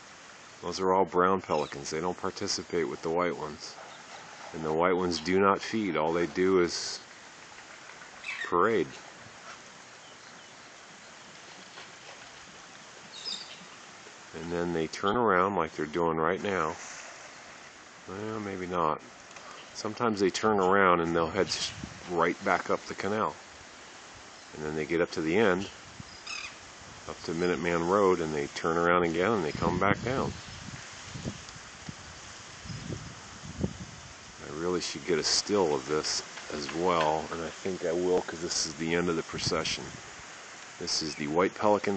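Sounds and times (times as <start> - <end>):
faint background hiss: 0.0 - 41.9
wind on microphone: 21.2 - 22.5, 25.6 - 27.4, 28.4 - 35.6.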